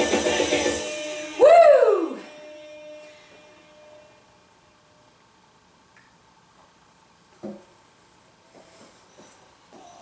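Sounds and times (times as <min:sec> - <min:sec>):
dance music: 0:00.0 - 0:02.3
woman cheering whoo: 0:01.4 - 0:02.3.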